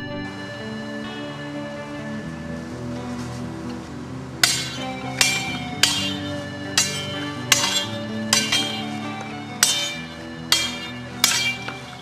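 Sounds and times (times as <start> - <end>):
background music: 0.0 - 12.0
swords clashing: 4.4 - 12.0.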